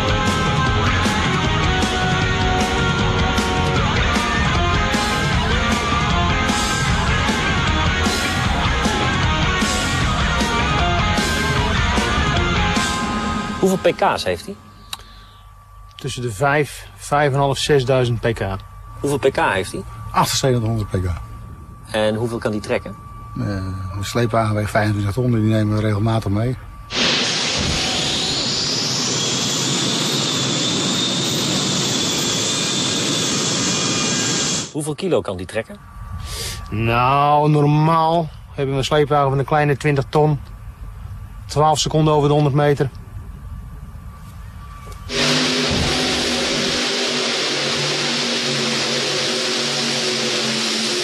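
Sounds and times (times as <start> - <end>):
gas turbine engine jet roar: 0.0 - 51.0
high turbine whine: 0.0 - 51.0
tractor engines roaring: 44.8 - 51.0.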